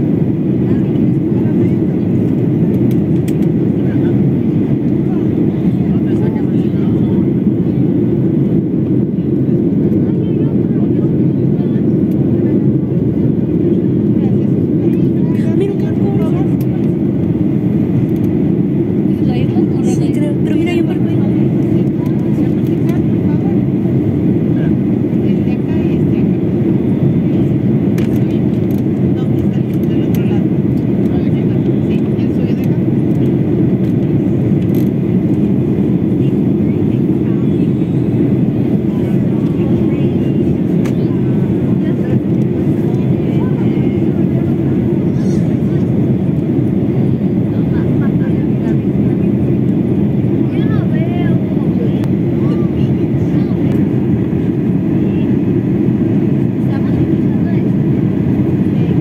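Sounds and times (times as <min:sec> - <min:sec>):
airliner cabin drone: 0:00.0 - 0:59.0.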